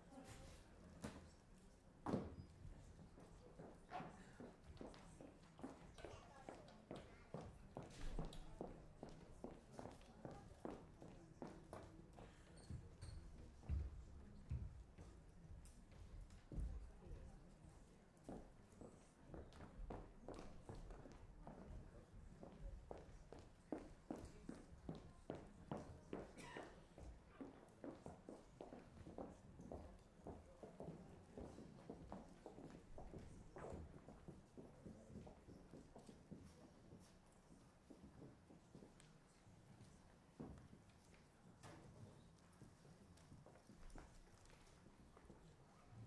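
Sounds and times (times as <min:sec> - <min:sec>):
faint footsteps and shuffles: 0:00.0 - 0:46.0.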